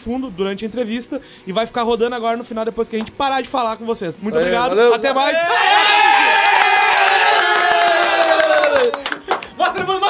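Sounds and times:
men cheering in a long yell: 5.3 - 9.1.

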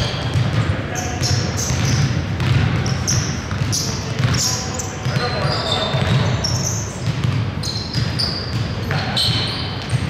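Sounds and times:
sneakers squeaking: 0.0 - 10.0
basketball thumping on floor: 1.7 - 4.4.

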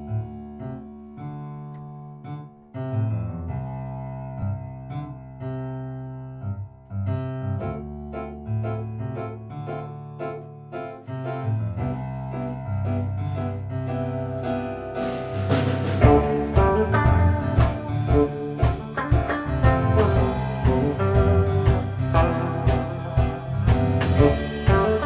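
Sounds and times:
keyboard chords: 0.0 - 25.0
low bass line: 2.8 - 25.0.

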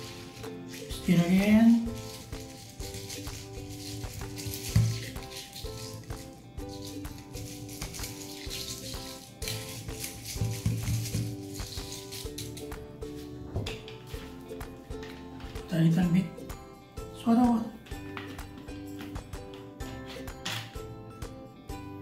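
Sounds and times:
ice rattling in a glass: 0.0 - 12.6
upbeat ukulele music: 0.0 - 22.0.

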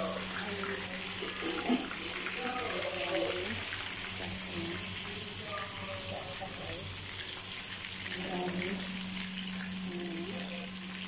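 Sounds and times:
fish sizzling in hot oil: 0.0 - 11.0
low steady hum: 0.0 - 11.0.

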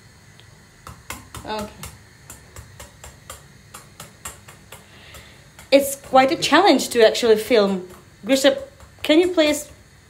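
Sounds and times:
egg tapping on saucepan rim: 0.8 - 9.8.

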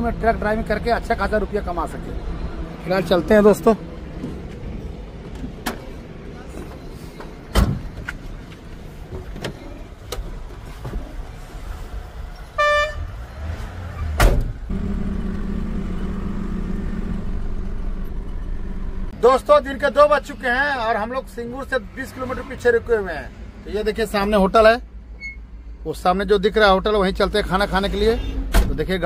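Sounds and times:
vehicle horn toot: 12.6 - 13.2
knocks and thumps in truck cab: 14.2 - 14.6
truck engine running: 14.7 - 19.2.

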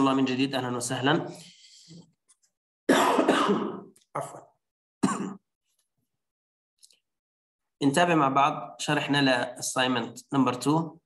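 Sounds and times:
man coughing: 2.9 - 4.4, 5.0 - 5.4.

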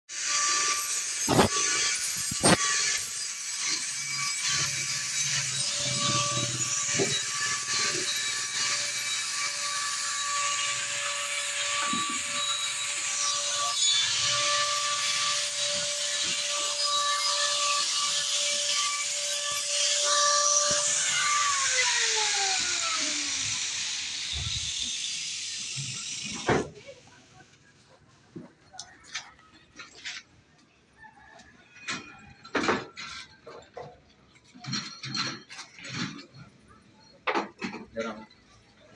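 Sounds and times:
power tool motor whine: 0.1 - 9.6, 10.2 - 26.5
rough grinding hiss: 0.1 - 12.3.

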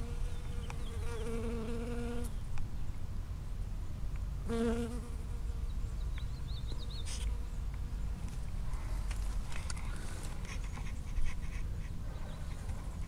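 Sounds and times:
honeybee buzzing in flight: 0.0 - 2.3.

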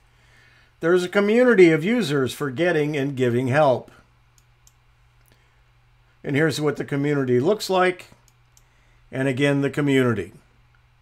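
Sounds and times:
faint low hum: 0.0 - 11.0
faint short clicks: 8.1 - 8.7.

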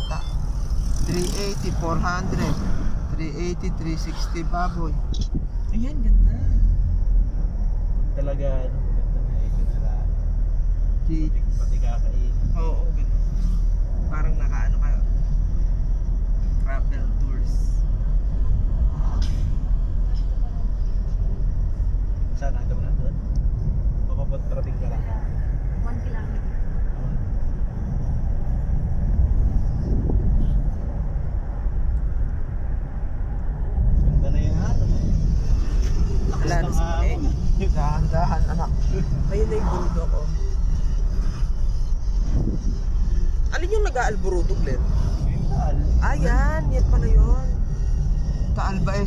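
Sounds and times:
vehicle rumble inside cabin: 0.0 - 49.0
voices talking: 35.8 - 41.5.

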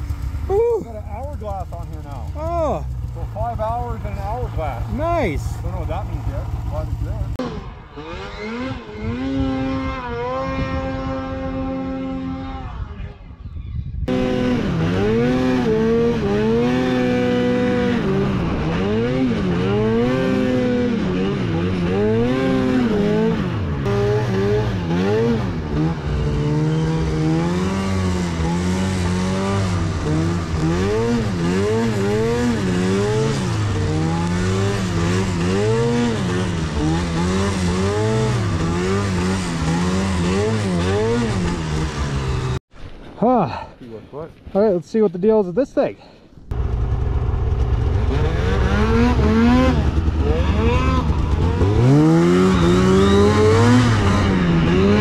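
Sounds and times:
snowmobile engine revving: 0.0 - 13.2, 14.1 - 42.6, 46.5 - 55.0.

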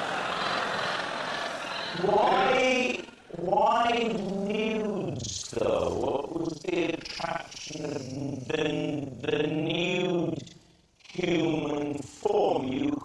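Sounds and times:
man talking in distorted voice: 2.0 - 13.0.

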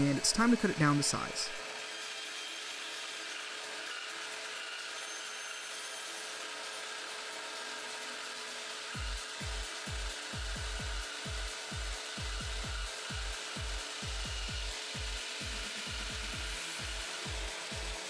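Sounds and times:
band saw cutting: 0.0 - 18.0.

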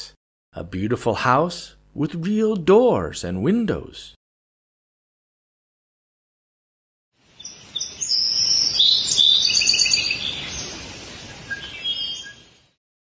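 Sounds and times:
faint outdoor background: 0.0 - 4.2
birds chirping and trilling: 7.3 - 12.7.

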